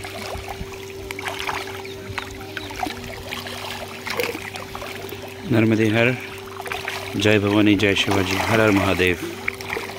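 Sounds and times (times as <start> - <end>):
low steady hum: 0.0 - 9.9
small water splashes: 0.0 - 9.9.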